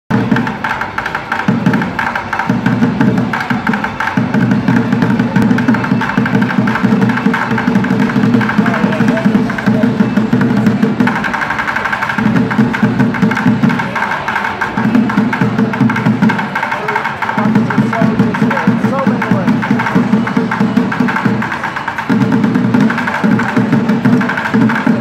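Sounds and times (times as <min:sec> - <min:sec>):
drumsticks beating plastic buckets: 0:00.1 - 0:25.0.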